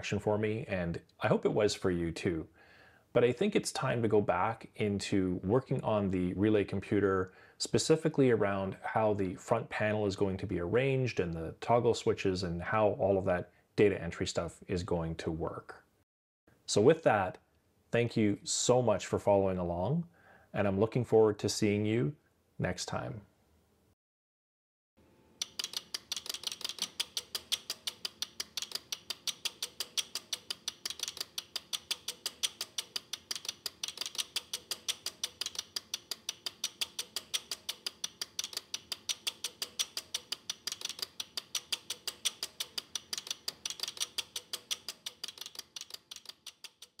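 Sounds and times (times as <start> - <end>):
relays clicking rapidly: 25.4 - 47.0.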